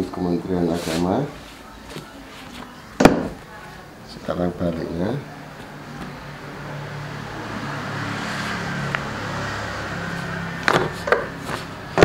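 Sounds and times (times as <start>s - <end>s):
low engine hum: 5.4s - 12.0s.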